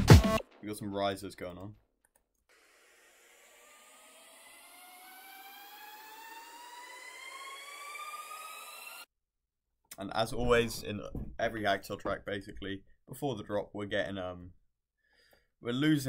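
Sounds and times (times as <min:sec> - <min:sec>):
electronic riser with rising tones: 0:02.5 - 0:09.1.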